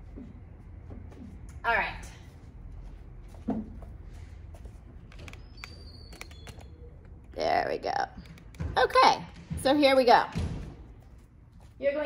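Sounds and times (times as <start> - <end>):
low room rumble: 0.0 - 12.0
phone being handled clicks and rustles: 4.9 - 7.4.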